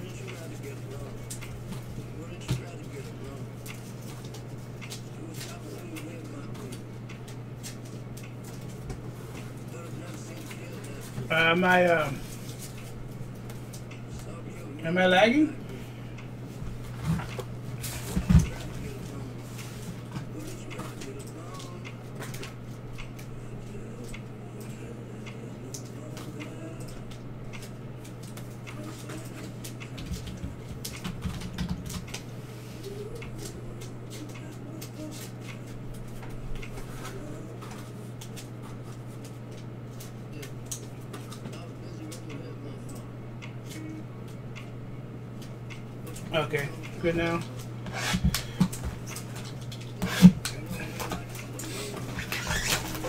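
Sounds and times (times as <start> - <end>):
low electrical hum: 0.0 - 53.0.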